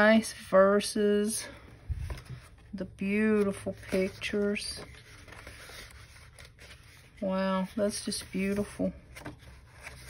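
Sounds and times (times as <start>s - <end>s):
book pages turning: 1.9s - 10.0s.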